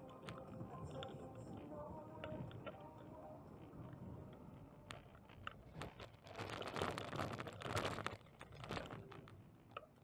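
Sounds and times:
faint bicycle ticks: 0:00.0 - 0:10.0
bicycle rattling over rough pavement: 0:05.0 - 0:09.4.

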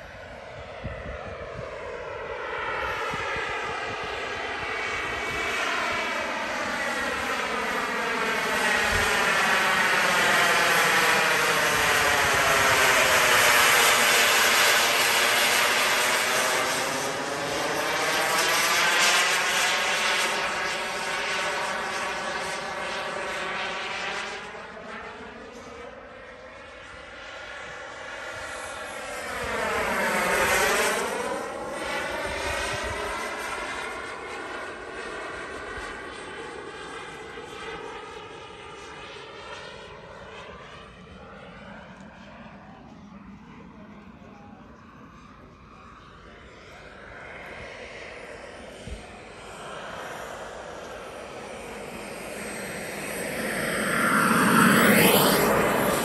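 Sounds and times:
jet turbine whine: 0:00.0 - 0:56.0.

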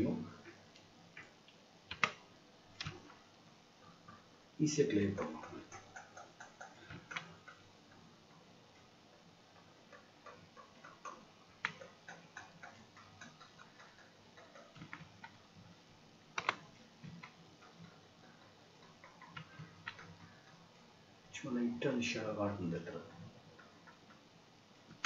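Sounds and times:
computer mouse clicks: 0:00.7 - 0:02.2, 0:02.8 - 0:03.2, 0:05.2 - 0:08.9, 0:09.6 - 0:15.4, 0:16.3 - 0:20.9.

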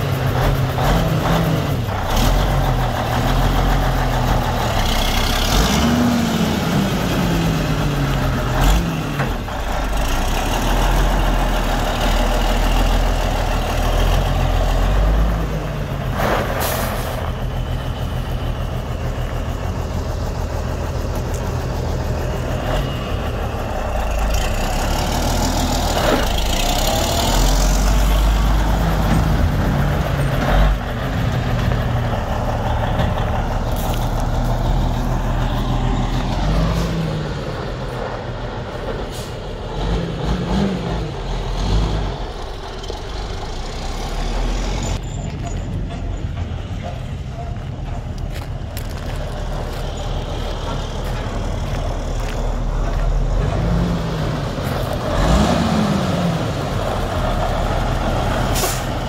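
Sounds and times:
diesel truck engine running: 0:00.0 - 0:59.0.

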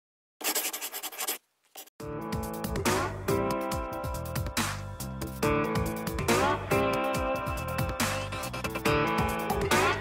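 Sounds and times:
marker scratching on paper: 0:00.4 - 0:01.9.

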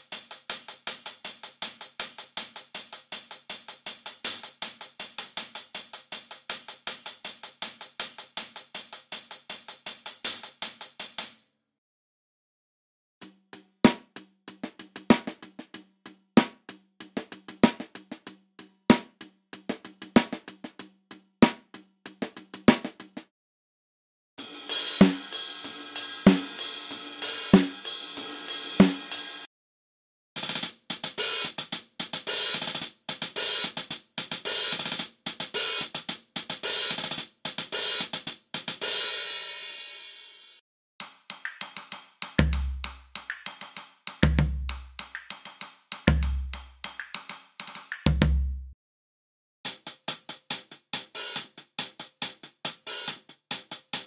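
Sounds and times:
hi-hat ticks: 0:00.0 - 0:11.3, 0:30.4 - 0:38.9, 0:41.0 - 0:48.1, 0:49.7 - 0:54.0
percussion loops: 0:24.4 - 0:29.5, 0:41.0 - 0:48.6.

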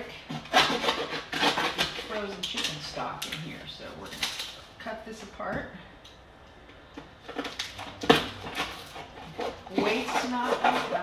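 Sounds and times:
knife cutting plastic container: 0:00.0 - 0:03.4, 0:07.2 - 0:11.0.

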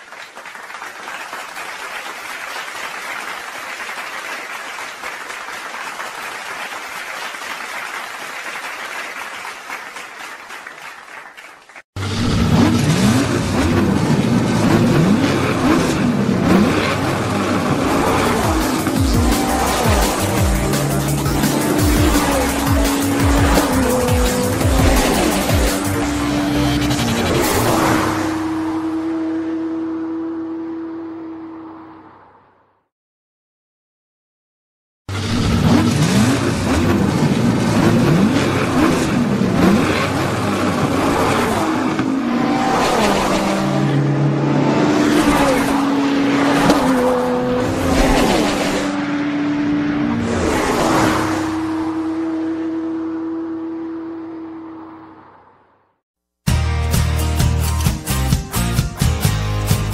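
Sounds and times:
race car engines revving: 0:12.0 - 0:32.5, 0:35.1 - 0:55.7
music with a beat: 0:18.4 - 0:26.0, 0:56.5 - 0:59.9.

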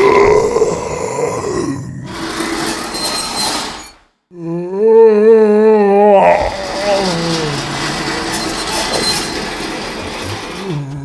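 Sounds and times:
low groaning voice: 0:00.0 - 0:02.5, 0:04.3 - 0:11.0.

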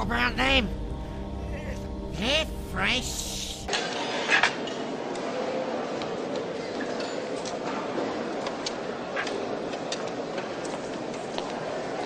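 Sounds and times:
crowd murmuring: 0:00.0 - 0:03.7.

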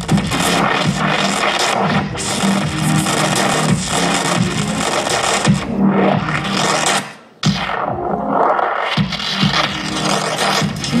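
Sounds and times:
loud electronic music: 0:00.0 - 0:11.0.

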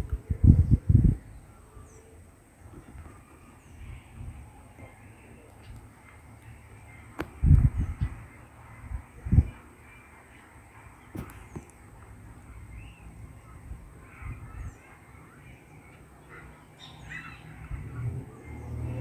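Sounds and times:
faint bird calls: 0:12.4 - 0:19.0.

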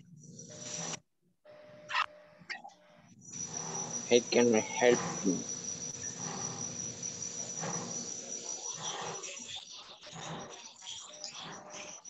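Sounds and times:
steady high-pitched tone: 0:03.1 - 0:12.0.

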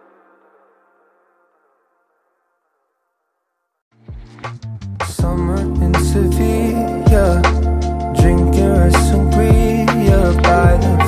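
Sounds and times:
song's held notes: 0:04.2 - 0:11.0.

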